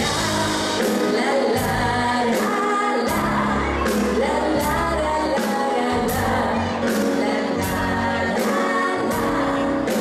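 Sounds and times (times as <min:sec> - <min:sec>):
bass guitar: 0:00.0 - 0:02.3, 0:03.1 - 0:10.0
women singing: 0:00.0 - 0:10.0.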